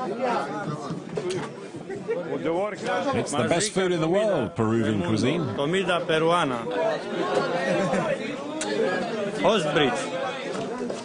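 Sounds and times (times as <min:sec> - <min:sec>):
men chattering: 0:00.0 - 0:11.0.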